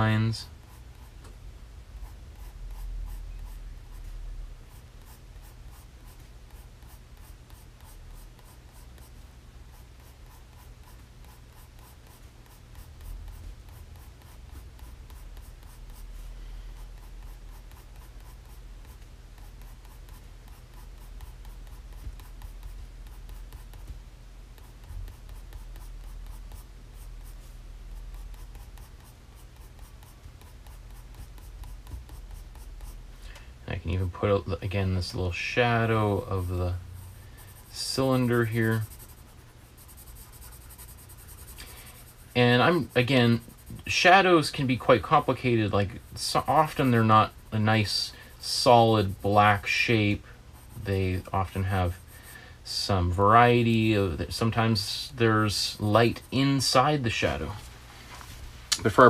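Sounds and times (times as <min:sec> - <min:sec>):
steady low hum: 0:00.0 - 0:59.0
pencil scratching on paper: 0:00.6 - 0:01.2, 0:02.0 - 0:04.1, 0:04.7 - 0:24.0, 0:24.6 - 0:33.0, 0:34.4 - 0:52.9, 0:53.5 - 0:57.5.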